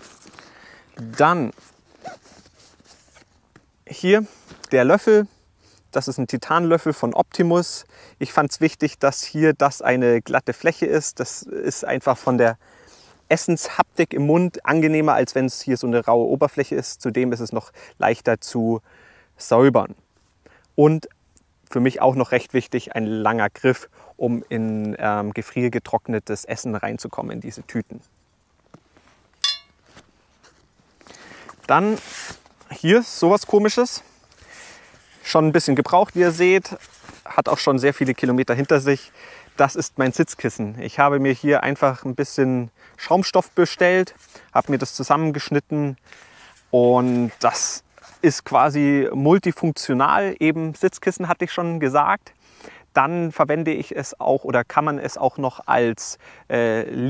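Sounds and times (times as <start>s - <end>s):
spoon metallic clink: 29.4s - 29.8s.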